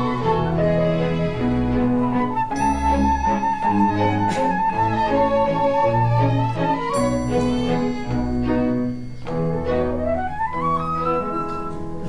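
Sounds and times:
bowed strings playing: 0:00.0 - 0:12.0.

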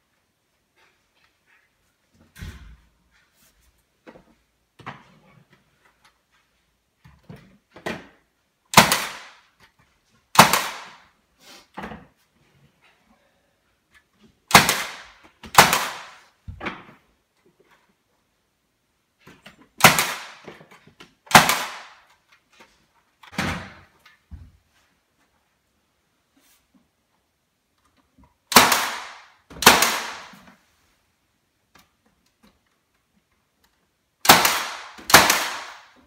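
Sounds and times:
nail gun shots: 0:08.7 - 0:09.5, 0:10.3 - 0:11.1, 0:14.5 - 0:16.3, 0:19.8 - 0:20.5, 0:21.3 - 0:22.1, 0:28.5 - 0:30.5, 0:34.2 - 0:36.0.

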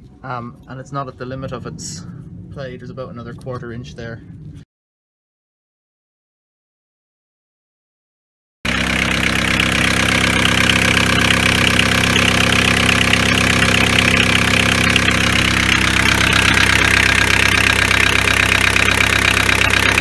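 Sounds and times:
diesel van engine idling: 0:08.7 - 0:20.0.

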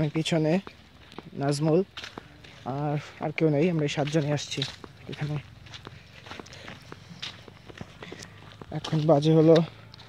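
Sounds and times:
footsteps on dirt path: 0:00.0 - 0:10.0.

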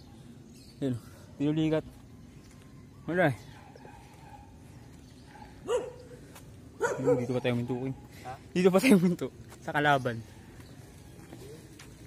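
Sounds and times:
dog barking: 0:03.5 - 0:04.6, 0:05.3 - 0:06.2, 0:06.8 - 0:08.0.

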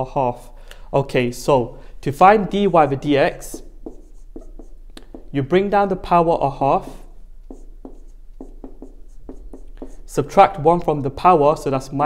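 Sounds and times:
marker pen writing on whiteboard: 0:02.4 - 0:10.9.

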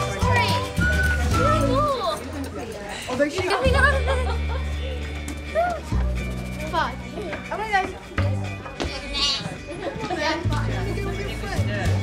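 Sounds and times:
background music: 0:00.0 - 0:12.0
lamb bleating: 0:09.2 - 0:09.5.

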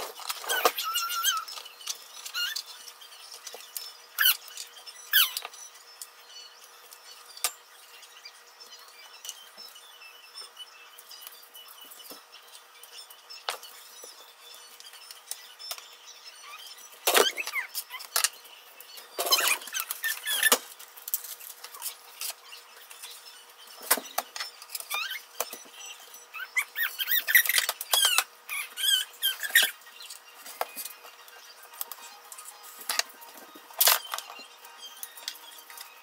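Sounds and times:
high squeaky chirps: 0:00.0 - 0:36.0.

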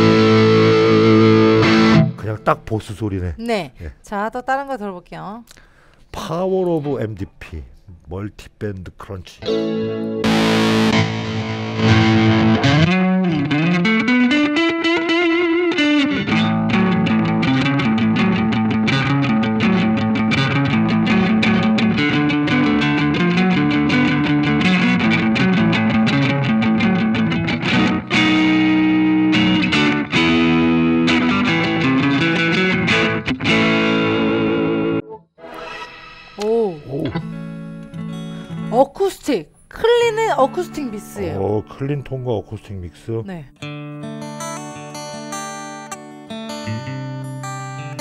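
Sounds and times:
electric guitar quick picked notes: 0:00.0 - 0:02.2, 0:09.4 - 0:35.2, 0:36.3 - 0:38.6.

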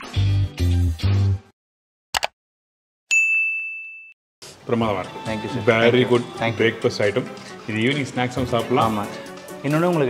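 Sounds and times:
bell ding: 0:03.1 - 0:04.2.

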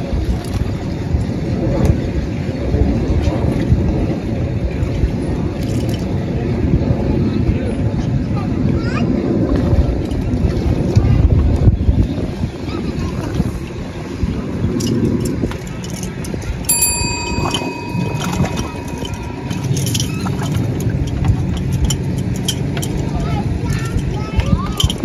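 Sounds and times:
wind buffeting microphone: 0:00.0 - 0:25.0
high-pitched tone: 0:16.7 - 0:21.0.

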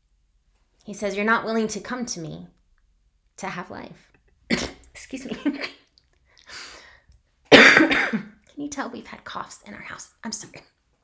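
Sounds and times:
woman coughing: 0:04.5 - 0:05.9, 0:07.5 - 0:08.4
faint breath: 0:06.3 - 0:07.2.

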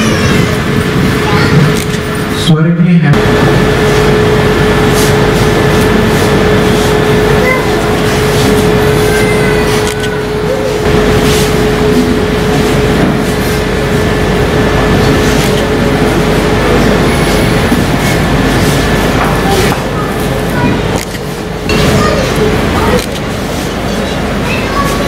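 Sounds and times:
steady high hum: 0:00.0 - 0:25.0.

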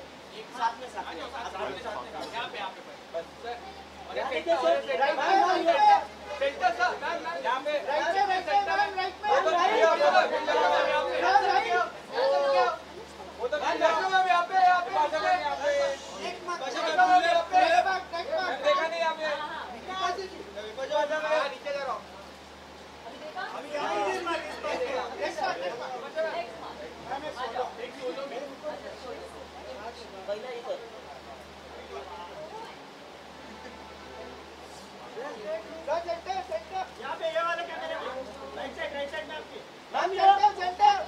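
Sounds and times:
voices talking and calling out: 0:00.0 - 0:41.0.

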